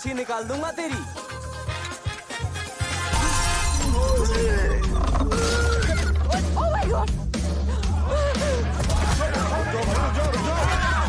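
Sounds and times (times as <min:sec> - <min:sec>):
bass-heavy music score: 0:01.4 - 0:11.0.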